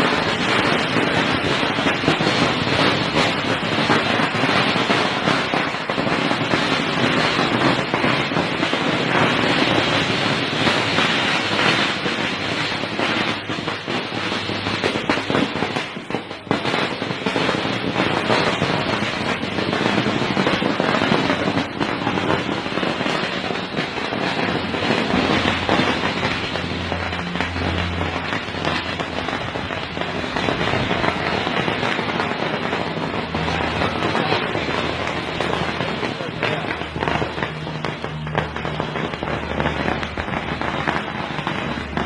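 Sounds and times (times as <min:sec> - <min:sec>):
string of firecrackers crackling: 0:00.0 - 0:42.0.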